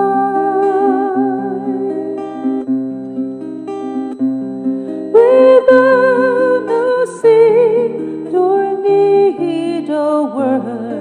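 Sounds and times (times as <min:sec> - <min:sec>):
woman singing with vibrato: 0:00.0 - 0:02.6, 0:05.1 - 0:11.0
acoustic guitar picking arpeggios: 0:00.0 - 0:11.0.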